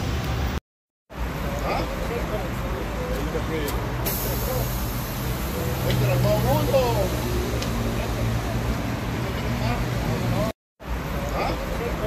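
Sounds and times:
voices of passers-by: 0.0 - 12.0
bus engine idling: 1.2 - 12.0.

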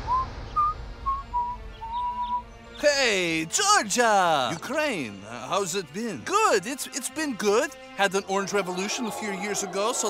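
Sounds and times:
person whistling a tune: 0.1 - 2.4.

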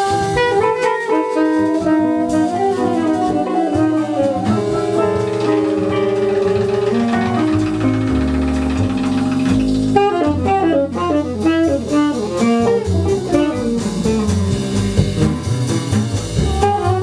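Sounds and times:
tenor saxophone: 0.0 - 14.6, 16.4 - 17.0
drums: 0.0 - 17.0
electric bass line: 1.7 - 17.0.

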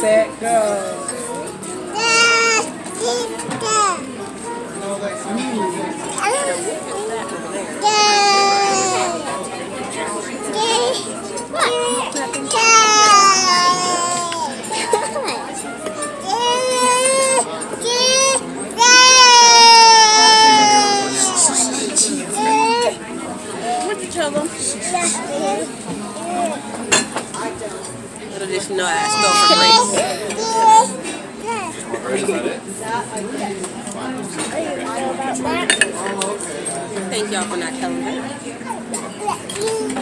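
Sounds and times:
low voices: 0.6 - 40.0
tableware clinking on plate: 35.6 - 36.8.

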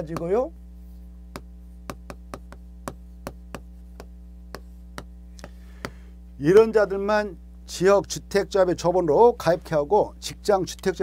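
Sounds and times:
low electrical hum: 0.0 - 11.0
chalk tapping on blackboard: 1.3 - 6.0.

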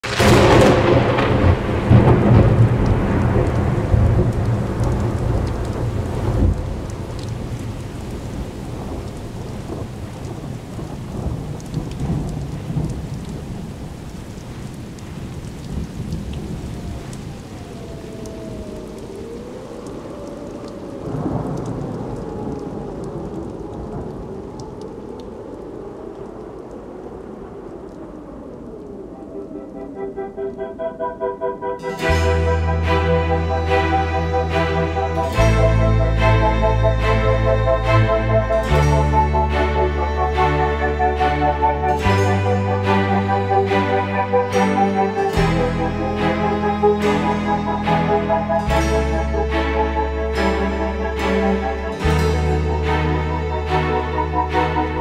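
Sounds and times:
steady rain: 0.0 - 55.0
thunder rumbling: 0.0 - 55.0.

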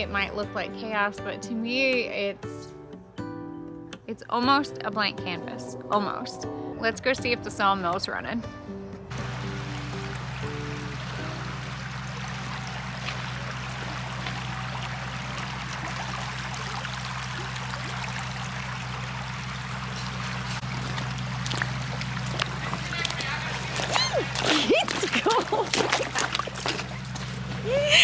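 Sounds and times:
background music with low drone: 0.0 - 24.4
creek running over stones: 9.1 - 27.8
boot splashing into water: 9.2 - 27.3.

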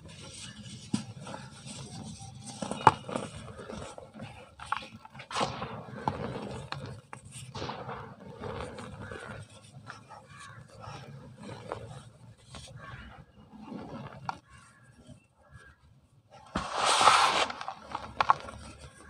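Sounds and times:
gritty rustle of cement powder: 0.0 - 19.0
sharp crack: 5.3 - 5.8, 7.6 - 8.2, 16.6 - 18.3.

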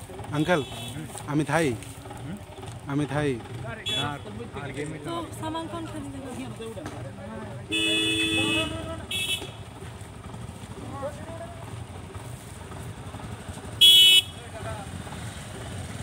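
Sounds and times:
vehicle horn honking: 0.4 - 1.3, 3.7 - 4.6, 7.6 - 9.8, 13.7 - 14.6.

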